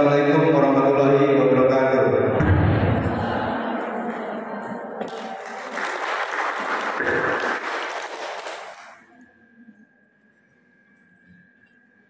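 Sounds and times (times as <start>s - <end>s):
audience applauding: 5.0s - 9.1s.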